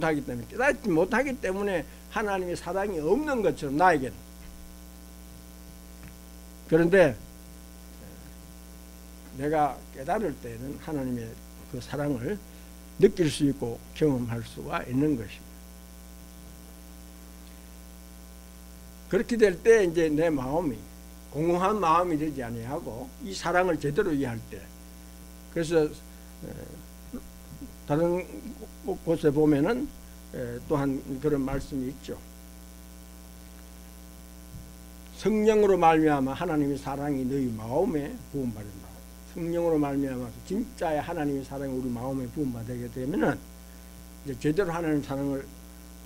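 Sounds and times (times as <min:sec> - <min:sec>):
electrical mains hum: 0:00.0 - 0:46.0
faint hiss: 0:00.0 - 0:46.0
man's voice: 0:27.8 - 0:32.2, 0:35.2 - 0:43.4.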